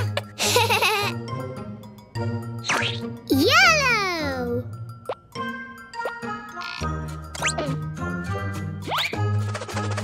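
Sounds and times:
playful cartoon music: 0.0 - 10.0.

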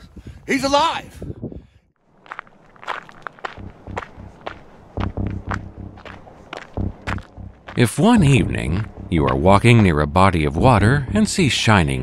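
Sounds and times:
footsteps walking: 2.0 - 9.9
heavy low thumps: 3.0 - 11.5.

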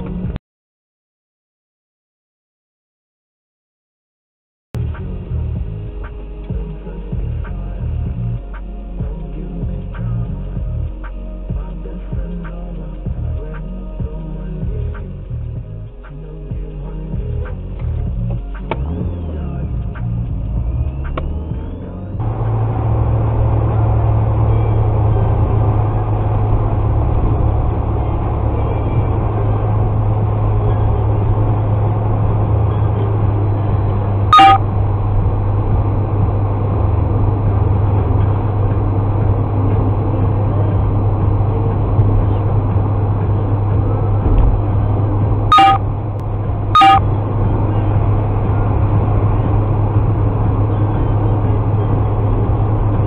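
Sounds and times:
car engine and road noise: 0.0 - 0.4, 4.8 - 53.0
short loud tone: 34.3 - 34.7, 45.5 - 45.9, 46.8 - 47.1.

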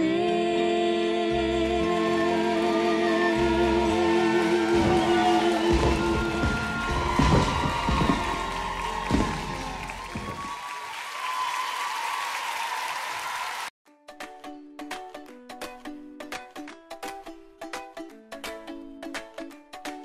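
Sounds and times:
held song chord: 1.3 - 9.9
audience applauding: 1.8 - 13.7.

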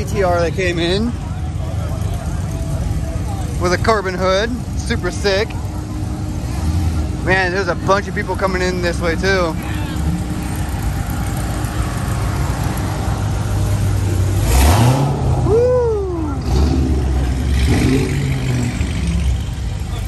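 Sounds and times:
car engine revving: 0.0 - 20.0
car engines idling: 0.0 - 20.0.

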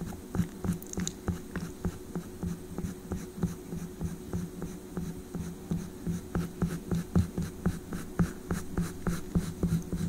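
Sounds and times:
faint steady hum: 0.0 - 10.0
oil pastel scratching on paper: 0.0 - 10.0.

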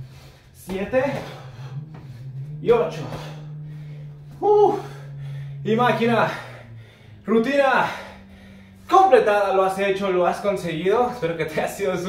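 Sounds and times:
steady low hum: 0.0 - 12.0
man exhaling with effort: 1.2 - 5.6.

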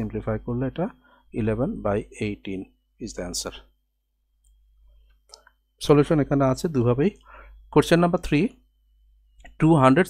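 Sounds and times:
man speaking: 0.0 - 3.8, 5.8 - 8.6, 9.5 - 10.0.

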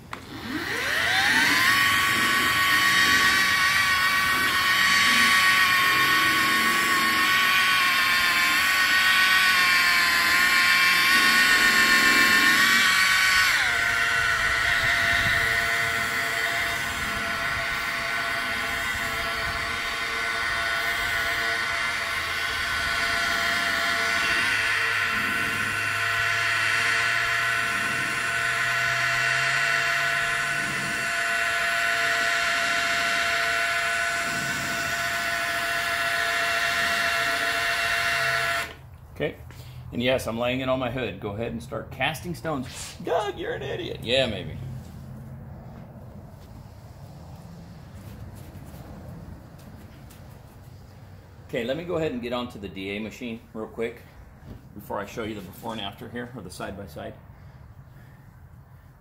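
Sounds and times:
polisher motor whine: 0.0 - 38.8.

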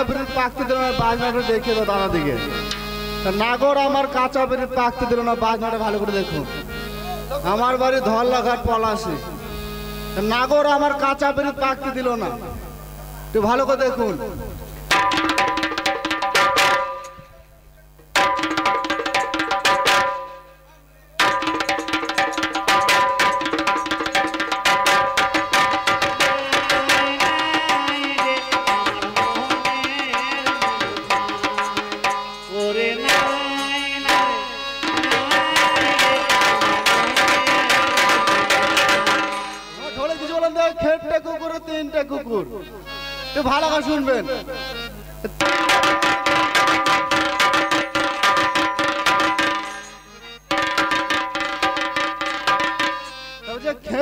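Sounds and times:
held chord: 0.0 - 13.0, 18.2 - 41.7, 42.3 - 54.0
barrel drum beating: 14.8 - 17.3, 18.0 - 20.5, 21.2 - 32.4, 34.1 - 39.9, 45.4 - 53.2.

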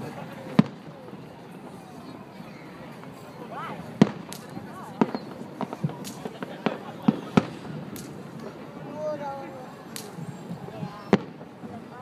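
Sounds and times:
fireworks exploding: 0.0 - 12.0.

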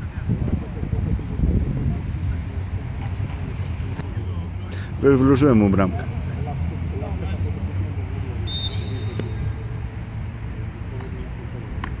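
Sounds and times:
distant traffic rumble: 0.0 - 12.0
distant players shouting: 8.0 - 9.6
short high whistle: 8.4 - 9.4.

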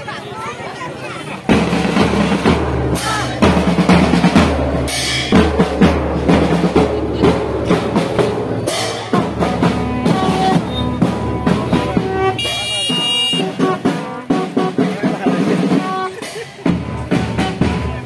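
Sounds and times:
marching bass and side drums: 1.3 - 18.0.

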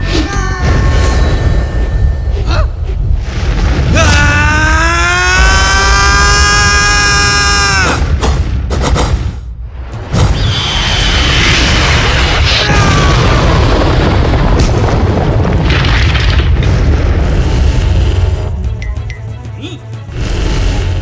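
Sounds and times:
deep rumble with booms: 0.7 - 4.7, 9.6 - 18.8
dramatic music: 16.6 - 21.0.

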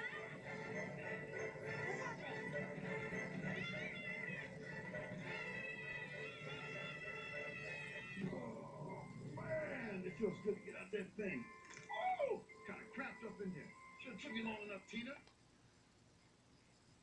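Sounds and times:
background music from speaker: 0.0 - 11.9.

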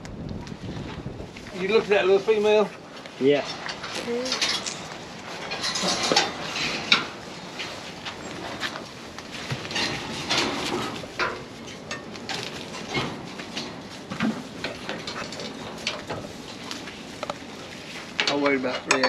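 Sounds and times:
metal chain clanking: 3.7 - 7.0.

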